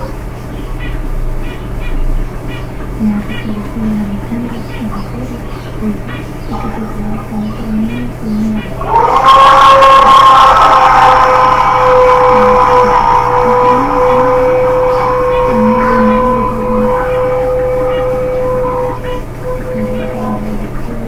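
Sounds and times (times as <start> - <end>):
loud steady multi-pitch tone: 0.0 - 21.0.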